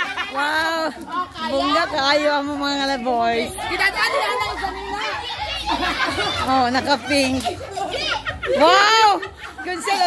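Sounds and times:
group talking and calling out: 0.0 - 10.0.

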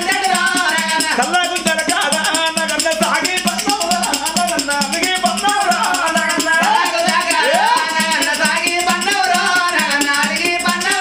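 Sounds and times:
man singing or chanting: 0.0 - 9.0
tambourine jingles shaking: 0.0 - 11.0.

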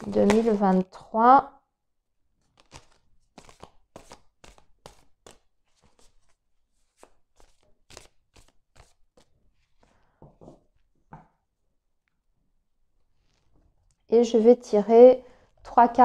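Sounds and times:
cards being shuffled: 0.0 - 0.8, 2.4 - 9.9, 13.2 - 14.0.

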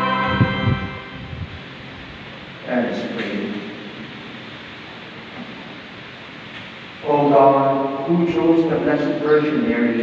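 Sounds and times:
room noise hiss in church: 0.0 - 10.0
person speaking: 7.0 - 10.0.

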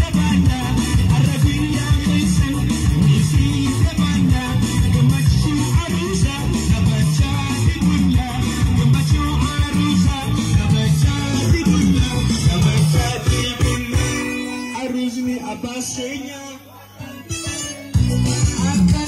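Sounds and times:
dance music on keyboard: 0.0 - 16.5, 17.1 - 19.0.

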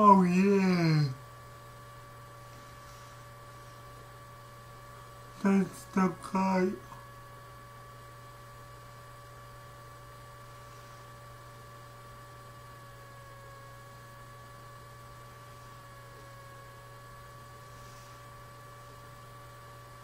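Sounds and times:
faint electrical hum: 0.0 - 20.0.

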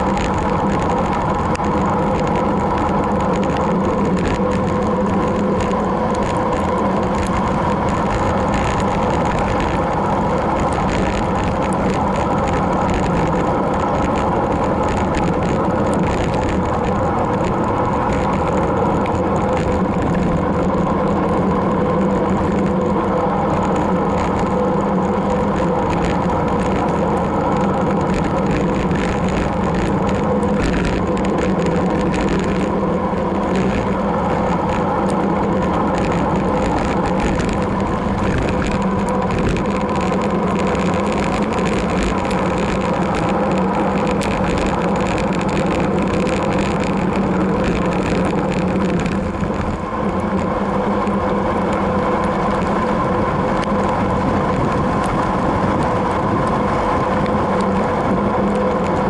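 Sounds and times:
constant hum: 0.0 - 59.0
wind and road noise of bicycle: 0.0 - 59.0.

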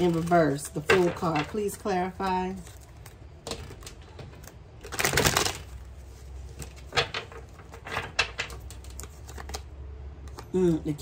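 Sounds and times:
cards being shuffled: 0.0 - 1.1, 2.5 - 10.5.

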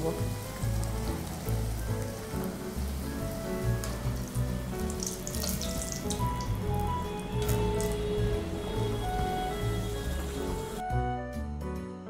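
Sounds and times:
food deep-frying in oil: 0.0 - 10.8
background music: 0.0 - 12.0.

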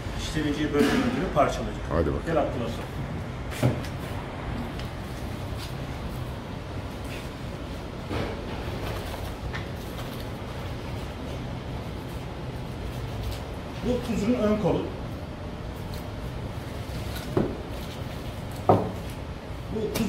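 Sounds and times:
low kitchen hum: 0.0 - 20.0.

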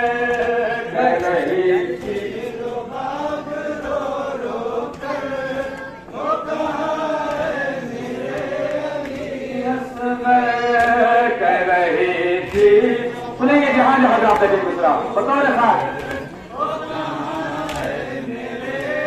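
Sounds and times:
men chanting a lament: 0.0 - 19.0.

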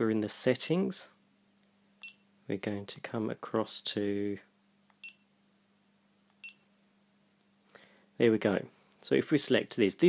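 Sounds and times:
camera beep: 2.0 - 2.2, 5.0 - 5.3, 6.4 - 6.7.

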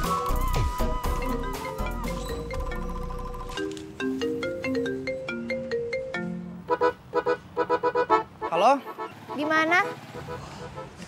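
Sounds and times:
marimba-like phone ringtone: 1.1 - 6.7.

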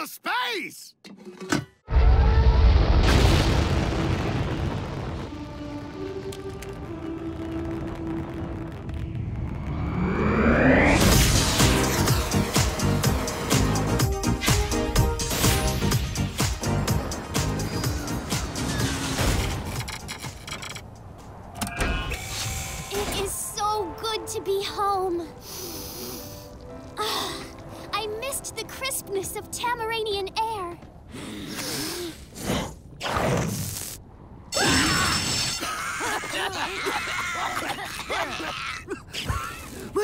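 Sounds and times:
deep rumbling boom: 1.9 - 12.6
rising sweep: 4.5 - 14.9
sci-fi door sliding open: 21.6 - 23.3.

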